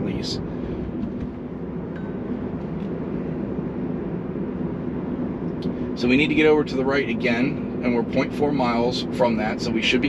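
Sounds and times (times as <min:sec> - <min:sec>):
road and tyre noise in car: 0:00.0 - 0:10.0.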